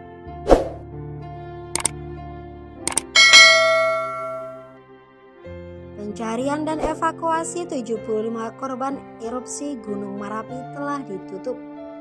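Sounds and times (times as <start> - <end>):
soft background music: 0.0 - 12.0
double mouse click: 2.9 - 3.1
notification bell ding: 2.9 - 4.6.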